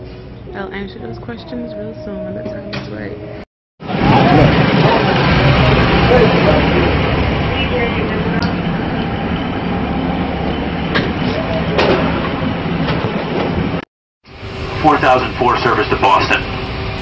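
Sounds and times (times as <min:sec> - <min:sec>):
bus engine hum and road noise: 0:03.9 - 0:13.8.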